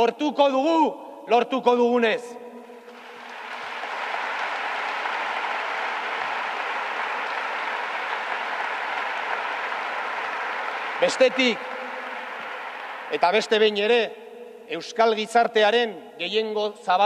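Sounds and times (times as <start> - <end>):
audience applauding: 2.8 - 13.6.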